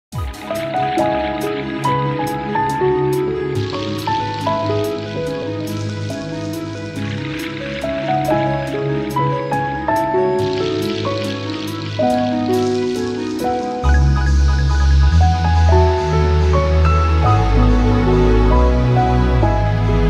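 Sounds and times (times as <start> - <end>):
gentle ballad melody: 0.2 - 20.0.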